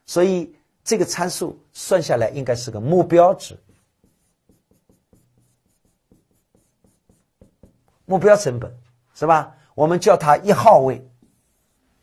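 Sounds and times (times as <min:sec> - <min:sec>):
pen writing on a board: 0:03.6 - 0:08.0, 0:11.1 - 0:12.0.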